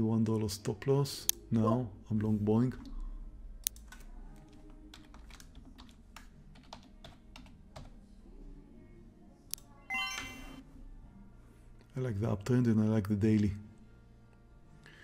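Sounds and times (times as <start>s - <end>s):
computer keyboard clicks: 3.6s - 7.9s
electronic chime: 9.9s - 10.6s.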